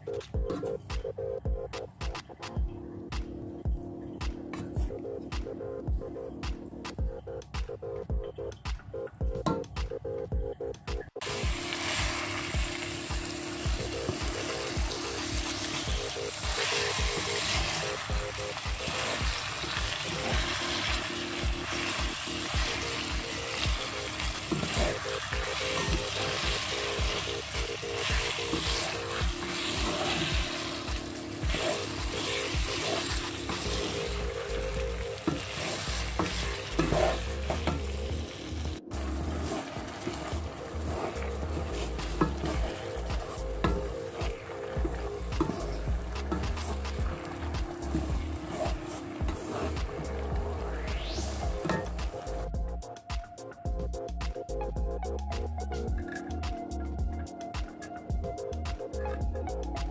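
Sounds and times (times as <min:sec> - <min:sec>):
meat sizzling in a frying pan: 0:11.2 - 0:38.4
wooden spatula scraping a pan: 0:35.3 - 0:37.8, 0:39.2 - 0:43.0.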